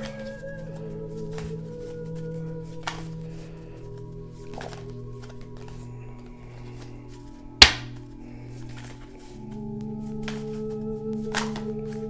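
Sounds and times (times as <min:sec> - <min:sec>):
slow ambient music: 0:00.0 - 0:12.0.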